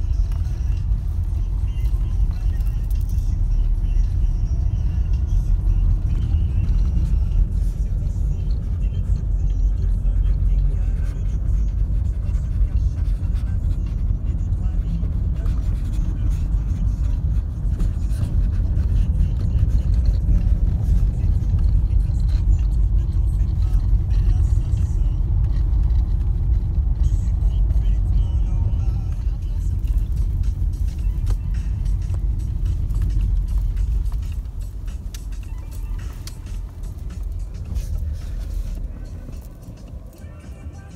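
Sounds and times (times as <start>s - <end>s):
car driving rumble from inside: 0.0s - 40.9s.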